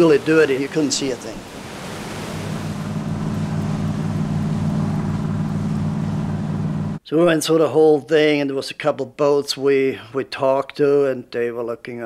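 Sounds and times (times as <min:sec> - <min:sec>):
boat engine droning: 0:00.0 - 0:07.0
wind and water hiss: 0:00.0 - 0:07.0.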